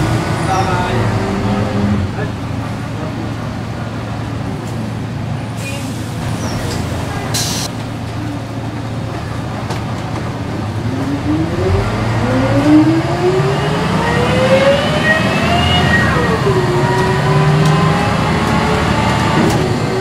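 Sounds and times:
bus diesel engine: 0.0s - 20.0s
short hiss: 7.4s - 7.7s.

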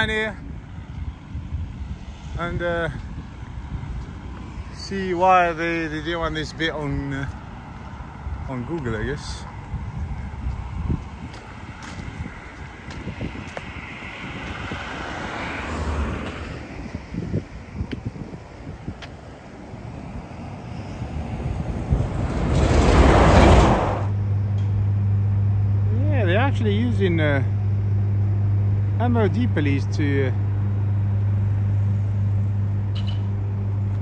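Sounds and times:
steady low hum: 0.0s - 13.9s, 16.4s - 34.0s
cars passing by: 0.0s - 34.0s.

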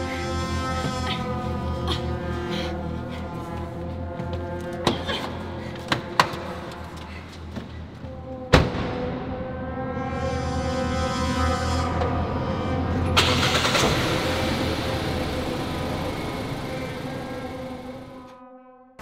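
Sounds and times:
car engine running: 13.0s - 18.3s.

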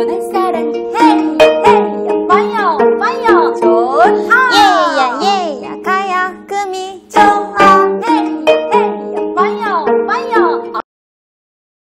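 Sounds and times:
plucked zither strings: 0.0s - 10.8s
sliding melody line: 0.0s - 10.8s.

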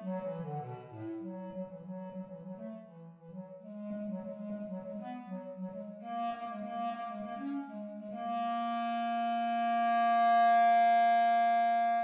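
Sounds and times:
synthesized bass clarinet: 0.0s - 12.0s.

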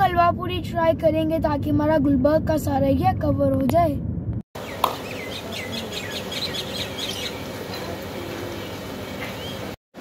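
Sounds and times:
street background hum: 0.0s - 10.0s
birds chirping: 4.6s - 9.8s.

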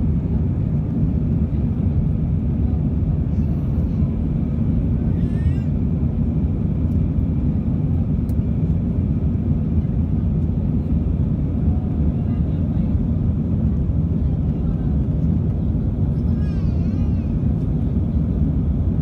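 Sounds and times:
aircraft engine and airflow roar: 0.0s - 19.0s.

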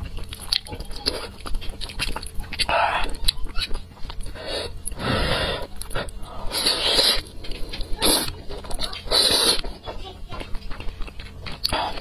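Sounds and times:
wet chewing with small clicks: 0.0s - 5.0s, 5.6s - 12.0s
noodle slurping: 1.0s - 9.7s.

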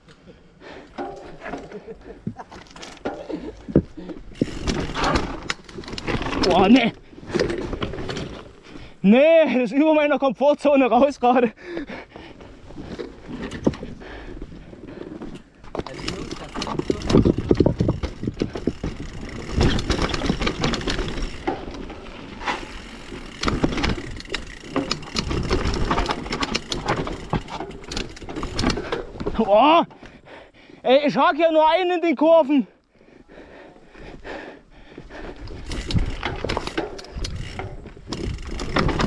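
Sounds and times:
bike chain and suspension rattling: 0.8s - 8.8s, 12.8s - 29.8s, 35.2s - 39.0s.

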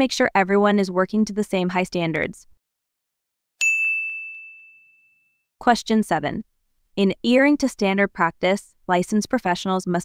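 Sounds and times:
high ding: 3.6s - 5.4s.

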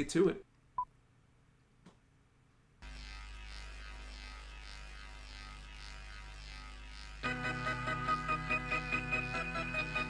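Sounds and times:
electrical buzz: 2.8s - 10.0s.

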